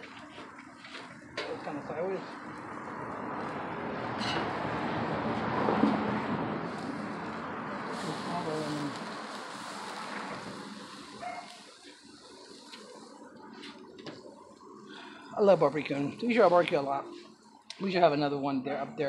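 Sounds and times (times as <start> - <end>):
meat sizzling on grill: 6.7 - 13.2.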